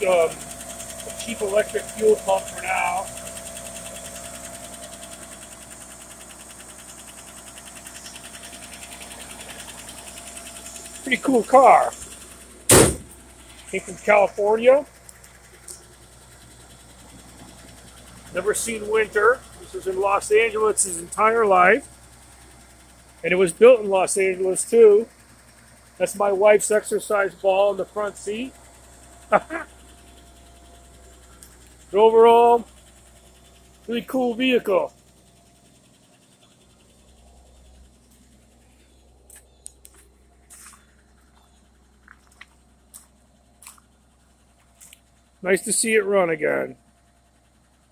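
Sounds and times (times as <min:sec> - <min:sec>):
car engine idling: 0:00.0 - 0:47.9
footsteps on concrete: 0:38.1 - 0:43.9.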